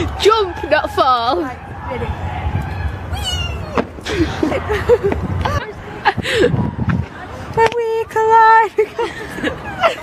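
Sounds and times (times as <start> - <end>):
steady low rumble: 1.2 - 10.0
girl squealing: 3.1 - 3.8.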